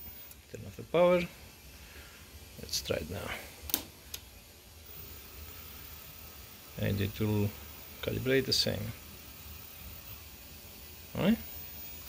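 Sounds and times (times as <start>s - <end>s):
high-pitched servo whine: 0.0s - 3.4s, 4.3s - 12.0s
low electrical hum: 0.0s - 12.0s
circuit breaker click: 3.7s - 4.2s.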